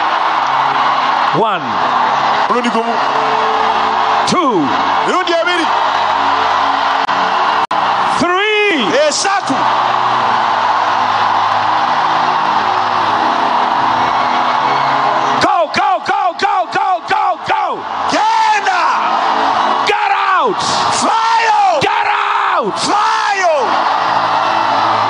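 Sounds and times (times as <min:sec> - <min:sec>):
keyboard music: 0:00.0 - 0:21.8
crowd screaming: 0:00.0 - 0:25.0
man's amplified voice shouting: 0:08.1 - 0:09.6, 0:15.4 - 0:19.1, 0:19.8 - 0:23.8.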